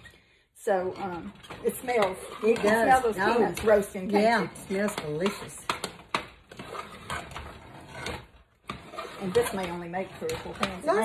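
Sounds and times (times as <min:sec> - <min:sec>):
spoon scraping metal saucepan: 0:01.0 - 0:05.9, 0:06.5 - 0:11.0.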